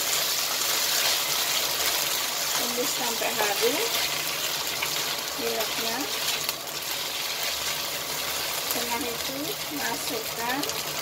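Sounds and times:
food sizzling in hot oil: 0:00.0 - 0:11.0
spatula scraping a pan: 0:00.1 - 0:08.6.

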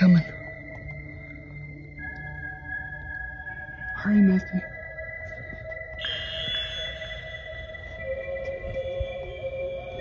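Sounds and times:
sustained electronic tones: 0:00.0 - 0:10.0.

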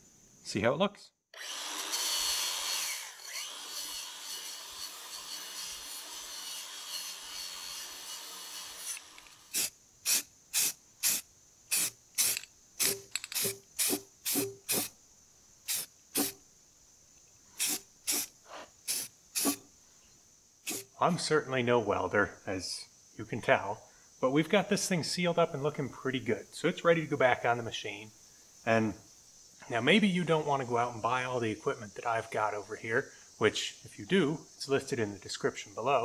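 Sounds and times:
wire wheel grinder on metal: 0:01.4 - 0:14.9, 0:18.9 - 0:19.6
aerosol spray can hissing: 0:08.8 - 0:14.9, 0:15.7 - 0:16.4, 0:17.6 - 0:19.6, 0:20.6 - 0:20.9.

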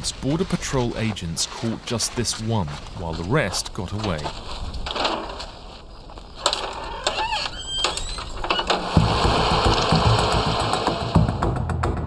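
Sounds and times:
truck engine rumbling: 0:04.0 - 0:11.5
door squeaking: 0:06.4 - 0:11.2.

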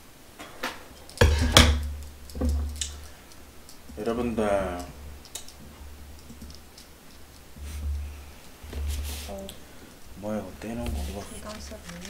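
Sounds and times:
knocks and clatter at a table: 0:00.4 - 0:02.8.

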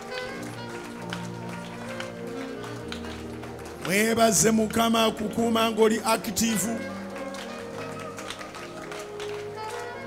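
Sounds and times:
soft worship music chords: 0:02.4 - 0:10.0.

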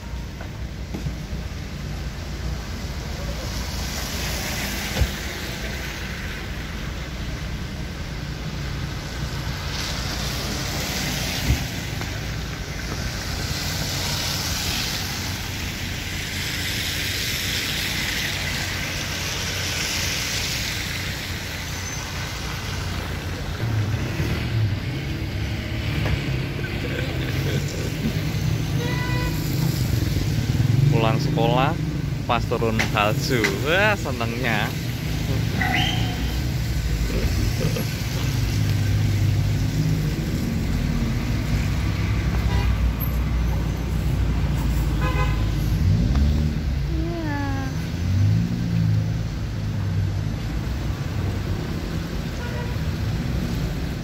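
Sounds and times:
car engine rumble: 0:00.0 - 0:52.3
tyre noise on wet road: 0:00.0 - 0:54.0.

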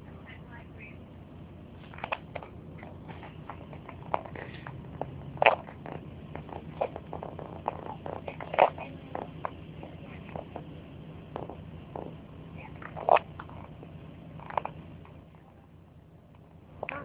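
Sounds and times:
faint low hum: 0:00.0 - 0:17.0.

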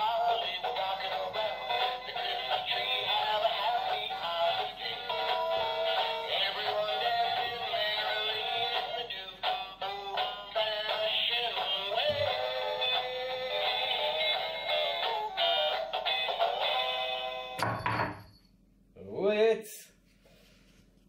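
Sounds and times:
toy singing through small speaker: 0:00.0 - 0:17.6.

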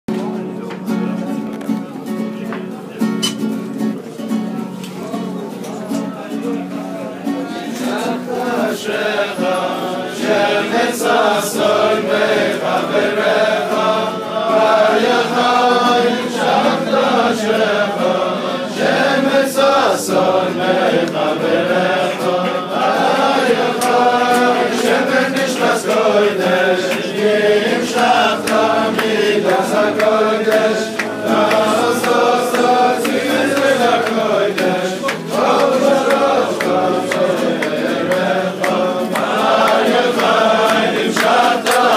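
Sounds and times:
crowd of men singing: 0:07.4 - 0:41.9.

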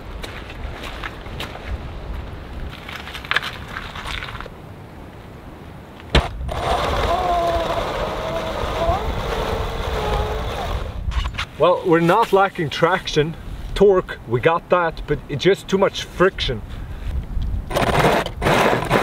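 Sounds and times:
handling knocks and clatter: 0:02.7 - 0:04.5
electric motor whining: 0:06.2 - 0:11.0.

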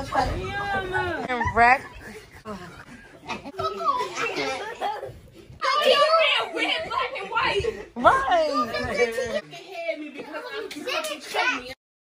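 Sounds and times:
fast chatter: 0:00.0 - 0:11.8.

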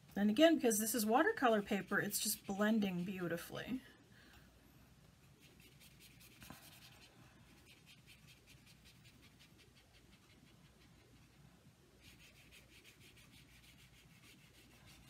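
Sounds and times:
brush swishing on paper: 0:01.4 - 0:03.4, 0:05.3 - 0:11.4, 0:12.0 - 0:15.0.

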